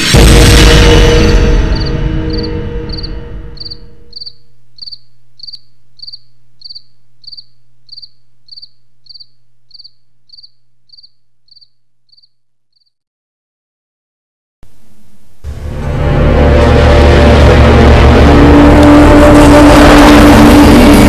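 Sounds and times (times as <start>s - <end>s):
deep music swell: 0.0s - 5.4s, 15.4s - 21.0s
cricket chirping: 1.2s - 13.0s.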